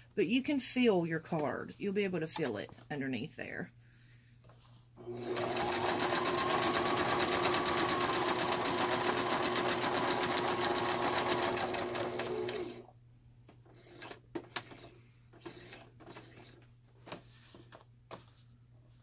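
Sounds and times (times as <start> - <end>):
sewing machine stitching: 5.0 - 12.9, 13.8 - 16.6.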